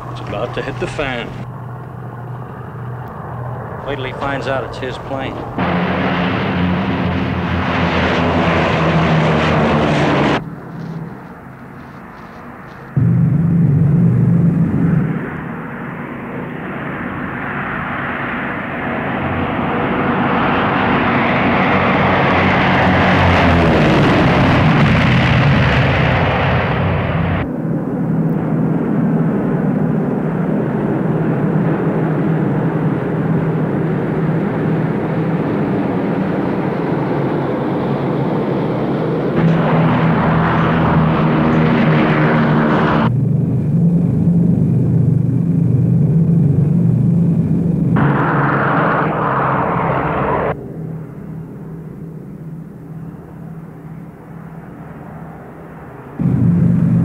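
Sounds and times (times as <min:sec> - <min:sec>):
plane passing close: 0:00.0 - 0:57.0
propeller airplane engine droning: 0:00.0 - 0:57.0.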